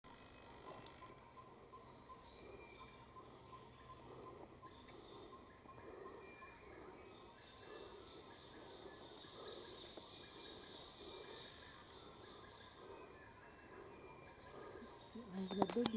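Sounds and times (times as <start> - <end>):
high pulsed insect trill: 0.1 - 15.9
lower insect trill: 0.1 - 15.9.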